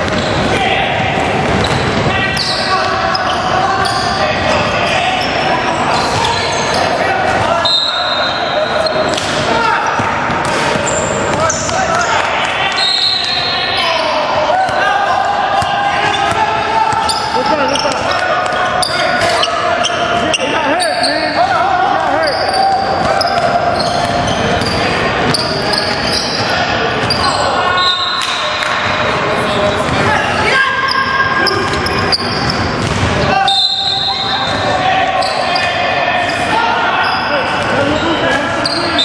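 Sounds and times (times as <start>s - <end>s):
shoe squeaks: 0.0s - 0.5s, 1.6s - 9.2s, 10.5s - 12.2s, 12.8s - 14.3s, 16.0s - 28.5s, 30.6s - 39.0s
players calling out: 0.0s - 39.0s.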